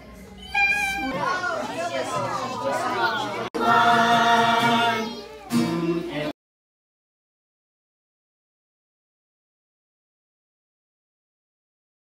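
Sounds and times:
children singing: 0:00.4 - 0:06.3.

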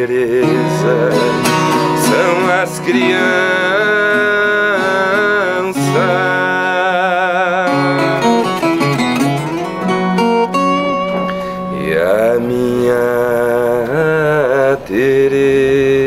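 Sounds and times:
man singing: 0:00.0 - 0:16.0
plucked viola caipira: 0:00.4 - 0:12.4.

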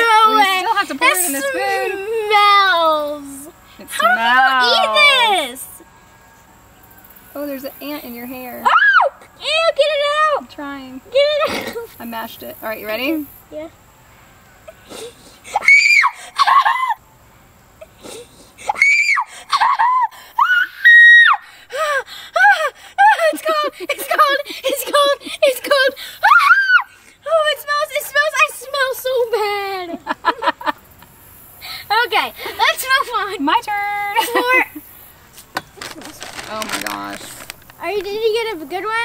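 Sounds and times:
girl shrieking and squealing: 0:03.9 - 0:05.4, 0:08.6 - 0:09.8, 0:15.5 - 0:17.0, 0:18.6 - 0:29.3.

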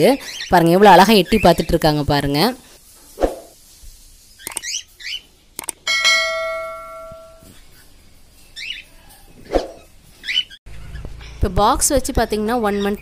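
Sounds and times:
click: 0:04.5 - 0:04.7, 0:05.6 - 0:05.8
notification bell ding: 0:05.9 - 0:07.5.

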